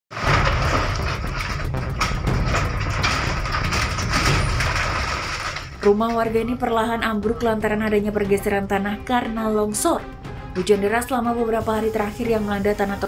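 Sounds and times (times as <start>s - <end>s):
breaking timber cracks: 0.1s - 6.3s
house collapsing rumble: 0.1s - 6.6s.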